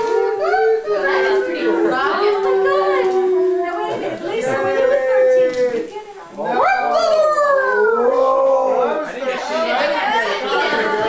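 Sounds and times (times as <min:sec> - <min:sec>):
dog howling: 0:00.0 - 0:05.9, 0:06.5 - 0:09.0.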